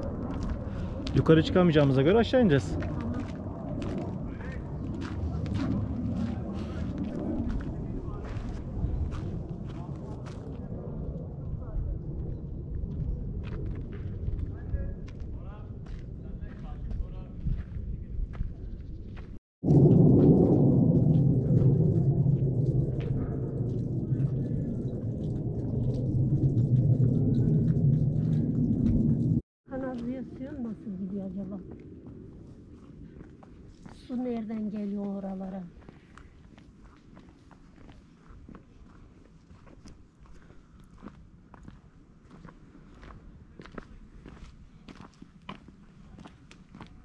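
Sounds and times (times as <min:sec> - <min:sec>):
wind rumbling on microphone: 0:00.0 - 0:47.0.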